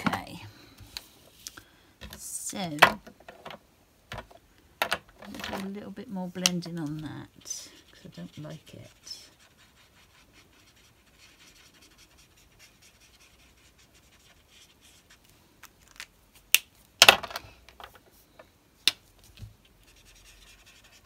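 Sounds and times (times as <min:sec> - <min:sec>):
marker scratching on card: 0:07.4 - 0:15.2, 0:19.8 - 0:21.0.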